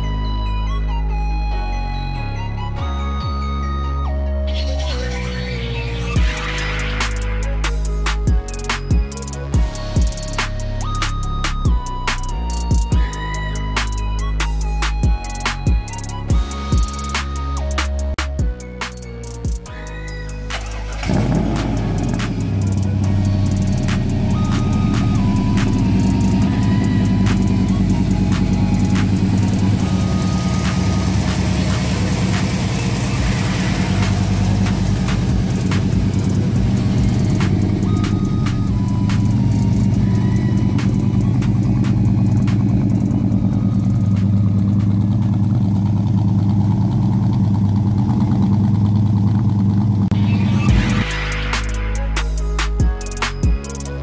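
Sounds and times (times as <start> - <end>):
car engine idling: 5.7 - 54.0.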